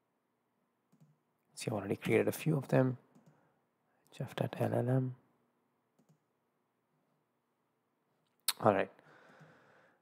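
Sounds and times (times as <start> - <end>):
computer mouse click: 0.9 - 1.2, 3.1 - 3.4, 6.0 - 6.3
person speaking: 1.5 - 3.1, 4.1 - 5.2.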